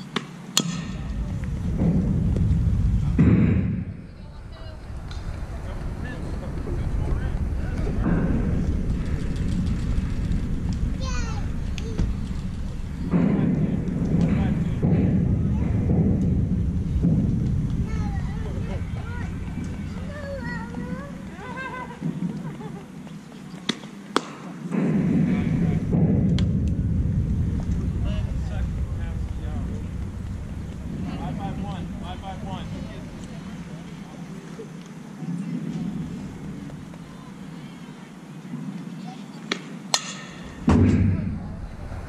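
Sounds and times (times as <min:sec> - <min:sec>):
steady outdoor hum: 0:00.0 - 0:42.0
faint voices: 0:00.6 - 0:26.0, 0:26.8 - 0:42.0
wind buffeting microphone: 0:00.7 - 0:23.0, 0:24.9 - 0:38.8, 0:40.4 - 0:42.0.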